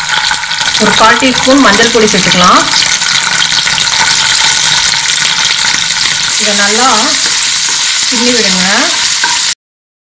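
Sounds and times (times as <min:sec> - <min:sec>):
hot oil sizzling in a pan: 0:00.0 - 0:09.6.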